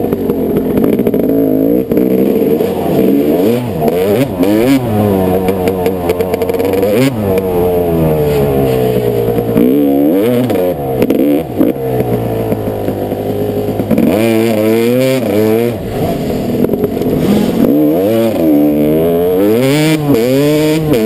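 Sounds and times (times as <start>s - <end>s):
dirt bike engine revving: 0.0s - 21.0s.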